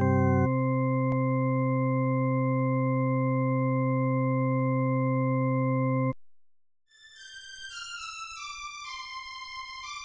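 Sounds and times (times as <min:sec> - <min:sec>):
steady electronic drone tone: 0:00.0 - 0:00.7.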